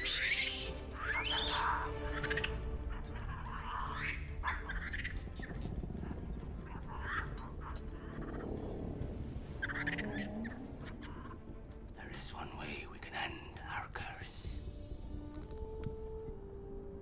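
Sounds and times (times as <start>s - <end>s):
monkey squeaky chattering: 0.0s - 6.2s
orchestral score: 0.0s - 17.0s.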